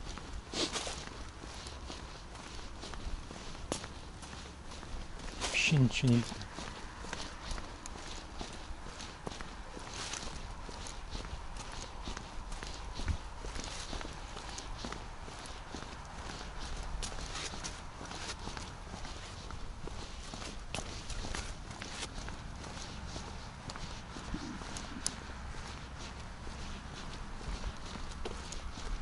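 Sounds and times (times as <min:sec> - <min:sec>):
footsteps on paving stones: 0:00.0 - 0:29.0.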